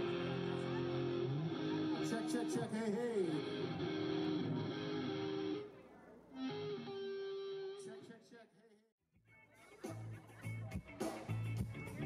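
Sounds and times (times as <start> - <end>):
electric guitar sustained notes: 0.0 - 5.7, 6.4 - 8.0.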